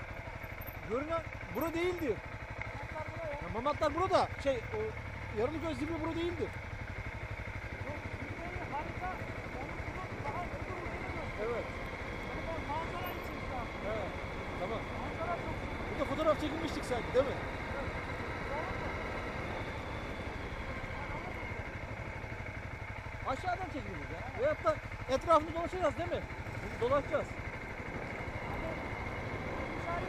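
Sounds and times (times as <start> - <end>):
motorcycle engine running: 0.0 - 30.0
muffled talk: 7.8 - 19.8.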